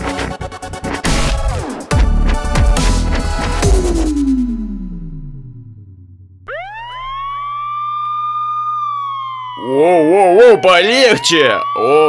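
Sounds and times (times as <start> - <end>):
siren wail: 6.4 - 12.0.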